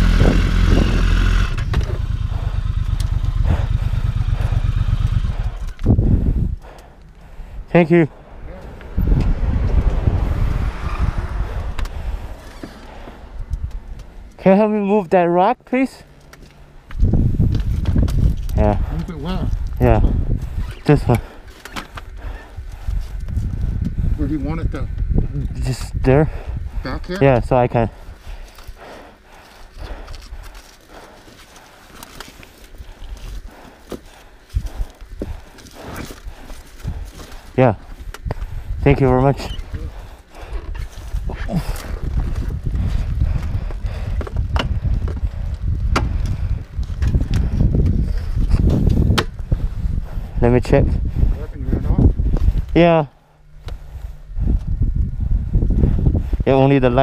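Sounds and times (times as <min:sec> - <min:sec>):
wind buffeting microphone: 0:00.0 - 0:14.4, 0:16.6 - 0:31.8, 0:32.4 - 0:57.0.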